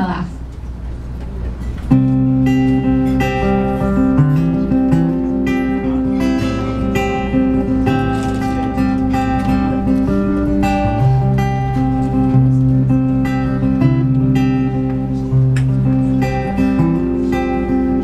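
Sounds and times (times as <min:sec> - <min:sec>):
acoustic guitar strumming: 0:00.8 - 0:18.0.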